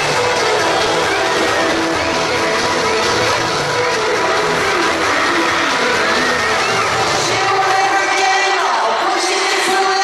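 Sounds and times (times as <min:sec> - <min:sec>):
crowd screaming and cheering: 0:00.0 - 0:10.0
loud pop music over speakers: 0:00.0 - 0:10.0.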